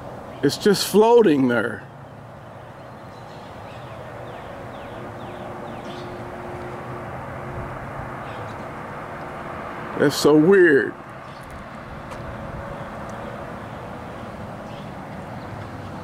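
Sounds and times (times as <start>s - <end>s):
pickup truck approaching: 1.1s - 16.0s.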